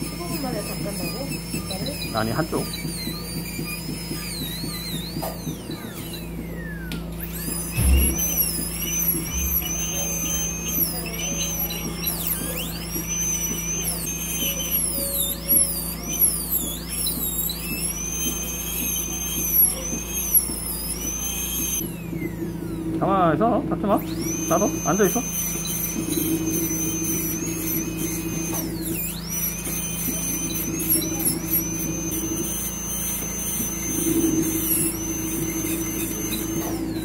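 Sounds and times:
dental drill whine: 0.0s - 37.0s.

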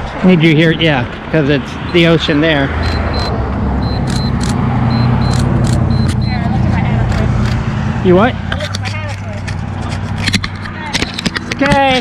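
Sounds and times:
car passing on highway: 0.0s - 8.8s.

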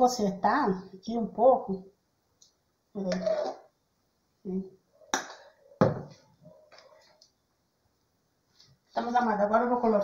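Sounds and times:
metal spoon scraping a saucepan: 3.1s - 3.7s.

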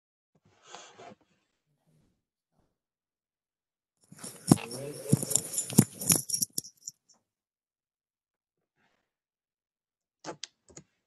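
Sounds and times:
rustling and clatter: 4.1s - 6.9s.

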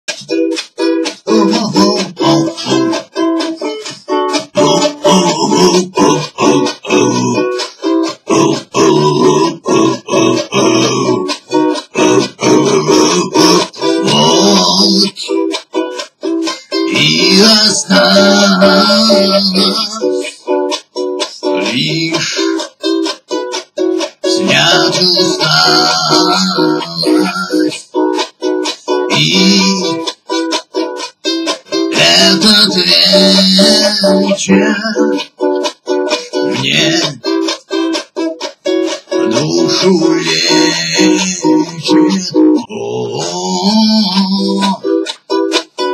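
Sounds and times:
strummed ukulele chords: 0.1s - 45.9s
man grunting in rhythm: 4.6s - 7.7s, 8.3s - 11.3s, 39.3s - 44.8s.

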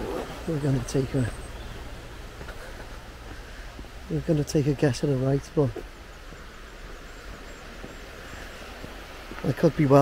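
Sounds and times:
river running over stones: 0.0s - 10.0s
footsteps on gravel: 5.7s - 10.0s.

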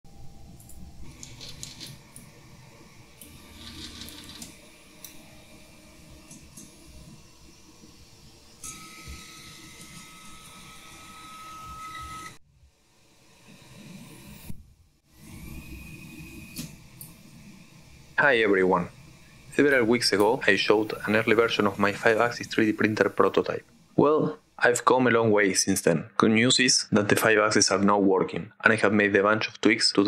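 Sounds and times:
stepper motors whining: 0.6s - 12.4s, 15.1s - 23.6s.

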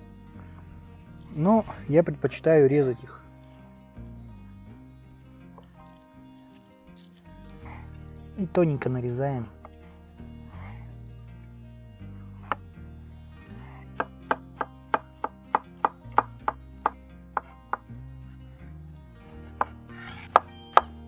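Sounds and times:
knife chopping on wooden board: 14.0s - 17.8s, 19.6s - 21.0s.

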